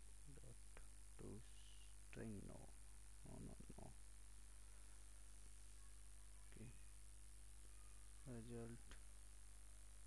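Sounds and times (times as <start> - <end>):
low steady hum: 0.0 - 10.0
man speaking quietly: 0.3 - 4.0, 6.4 - 6.8, 8.2 - 9.0.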